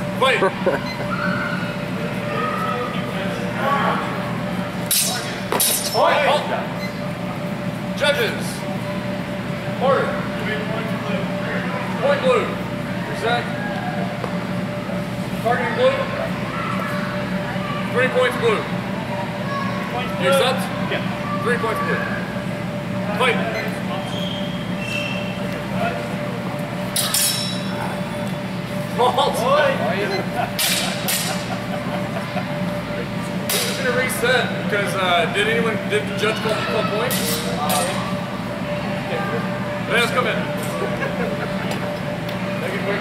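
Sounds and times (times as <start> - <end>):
indistinct chatter in echoing hall: 0.0 - 43.0
steady hum: 0.0 - 43.0
steel blades clashing: 4.8 - 6.2, 26.9 - 27.7, 30.6 - 31.4, 37.1 - 38.0.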